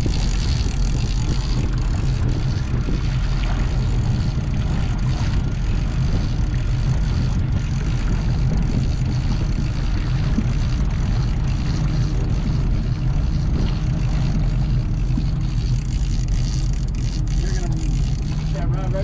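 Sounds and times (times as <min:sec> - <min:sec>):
boat engine droning: 0:00.0 - 0:19.0.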